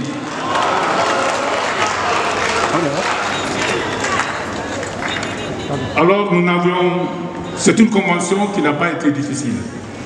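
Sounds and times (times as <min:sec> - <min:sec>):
audience applause: 0:00.0 - 0:05.4
crowd voices: 0:00.0 - 0:10.0.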